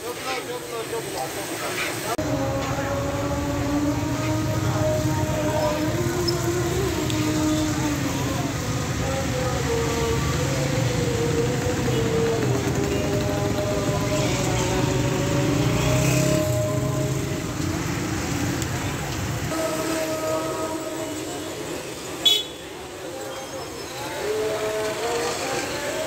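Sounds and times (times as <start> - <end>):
crowd chatter: 0.0 - 26.0
traffic noise: 0.0 - 26.0.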